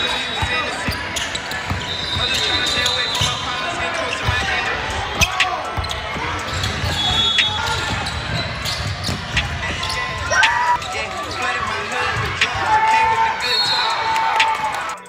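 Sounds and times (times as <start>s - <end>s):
sneakers squeaking: 0.0s - 15.0s
basketball dribbling: 4.1s - 12.6s.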